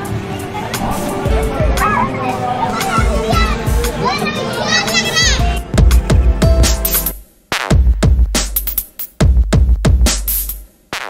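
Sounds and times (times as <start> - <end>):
children shouting and squealing: 0.0 - 5.7
loud music with steady beat: 0.0 - 11.0.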